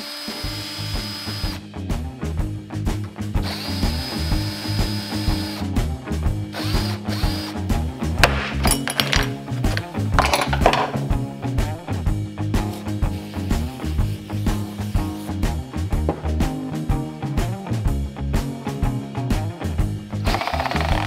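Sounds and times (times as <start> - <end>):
cordless drill whining: 0.0 - 1.6, 3.4 - 5.7, 6.5 - 7.7, 20.2 - 21.0
background music with beat: 0.1 - 21.0.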